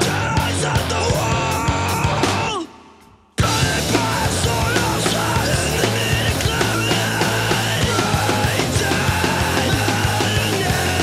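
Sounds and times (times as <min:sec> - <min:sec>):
distorted electric guitar riff: 0:00.0 - 0:02.7, 0:03.4 - 0:11.0
fast driving drums: 0:00.0 - 0:11.0.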